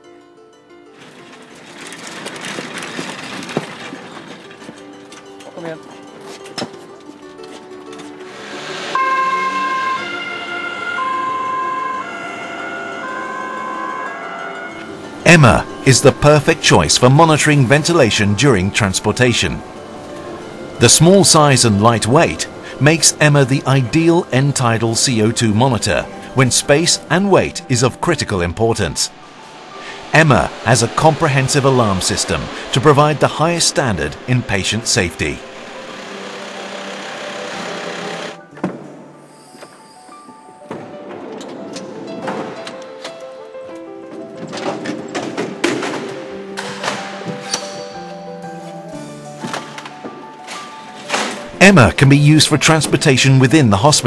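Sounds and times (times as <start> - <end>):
ambulance two-tone siren: 8.9 - 15.1
rising rush of noise: 29.2 - 34.4
van engine running: 29.2 - 38.4.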